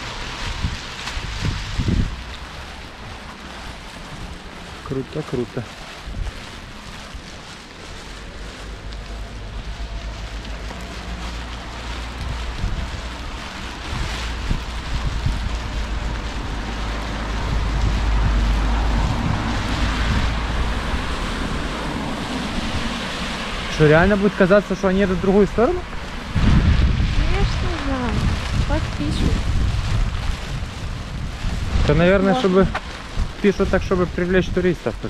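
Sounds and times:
heavy rain hissing: 0.0 - 35.0
wind rumble on microphone: 0.0 - 35.0.

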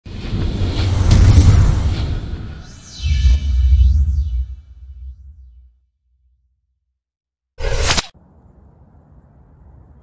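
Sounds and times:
whoosh sound effect: 0.1 - 5.6.

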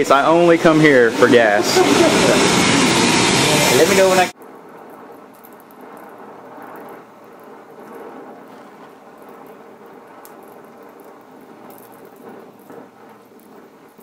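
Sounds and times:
gas torch hissing: 0.0 - 14.0
low hum: 0.0 - 14.0
faint crackles: 4.3 - 14.0.

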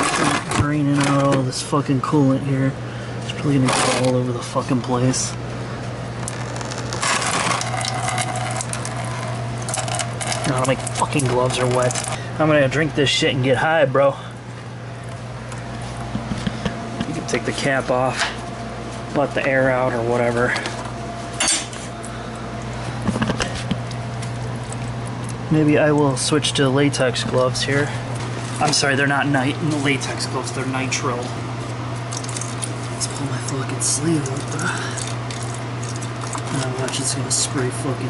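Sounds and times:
steady low hum: 0.0 - 38.0
coolant splashing into pan: 6.5 - 12.3, 32.0 - 37.8.

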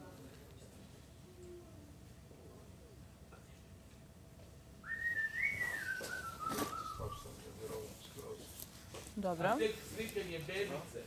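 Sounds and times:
person whistling: 4.8 - 7.3.

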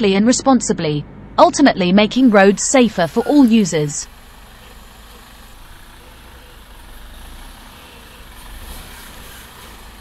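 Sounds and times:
truck rumbling slowly: 1.0 - 10.0.

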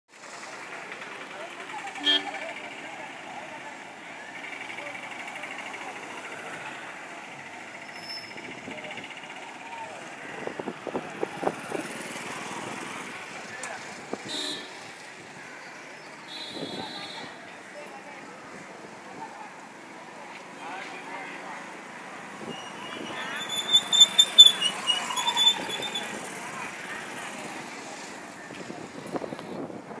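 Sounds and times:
traffic noise: 0.1 - 30.0
crowd voices: 0.2 - 30.0
many people talking: 0.2 - 30.0
car horn honk: 2.0 - 2.4, 14.2 - 14.8, 16.3 - 17.4
motorcycle passing: 10.2 - 14.0.

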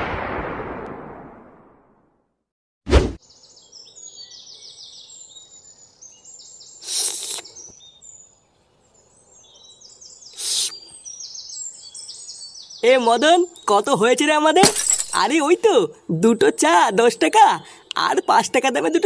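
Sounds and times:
birds chirping: 3.2 - 19.0.

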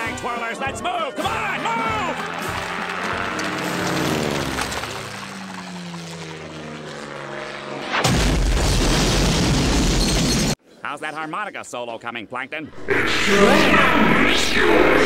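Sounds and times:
loud explosion and roar: 8.0 - 10.3.

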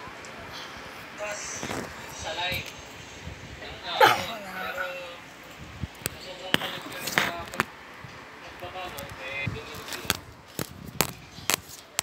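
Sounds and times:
faint voice: 3.9 - 5.2.

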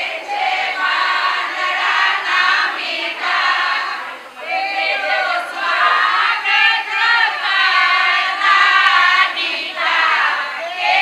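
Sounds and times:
women singing together: 0.0 - 11.0.

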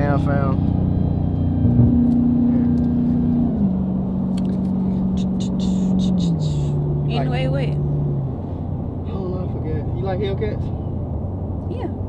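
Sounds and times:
car engine drone inside cabin: 0.0 - 12.0.

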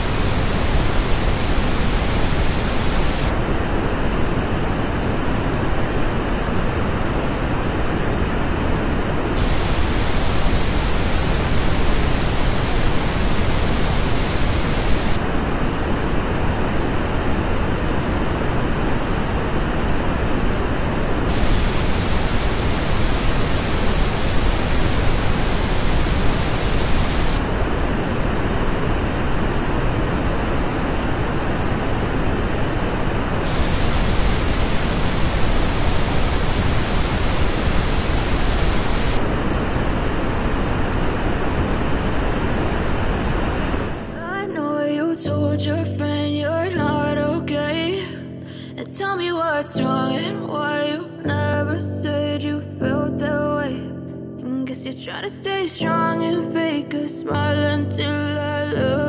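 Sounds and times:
pink noise test signal: 0.0 - 48.1.

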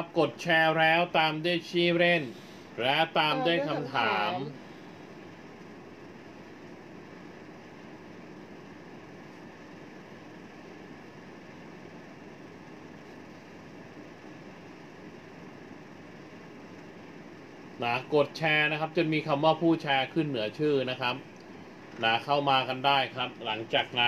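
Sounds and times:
room background hiss: 0.0 - 24.0.

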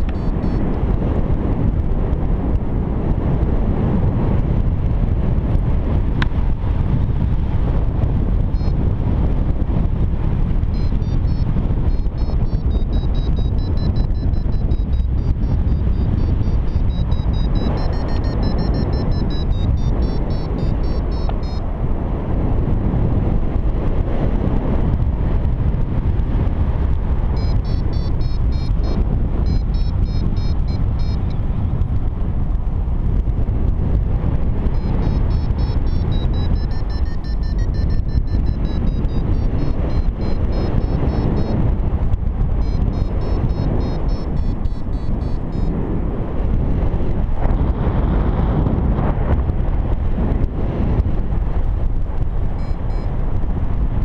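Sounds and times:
rapid short electronic beeps: 0.0 - 0.7, 8.5 - 8.8, 10.7 - 21.6, 27.4 - 31.4, 34.7 - 41.7, 42.6 - 45.8, 52.6 - 53.2
wind on microphone: 0.0 - 54.0.

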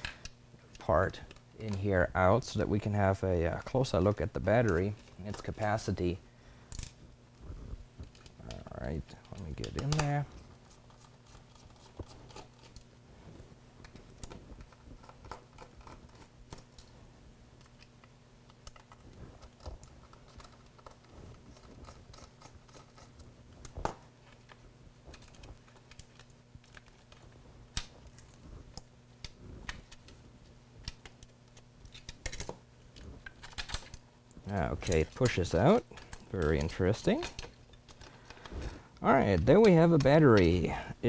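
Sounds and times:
low steady hum: 0.0 - 41.0.

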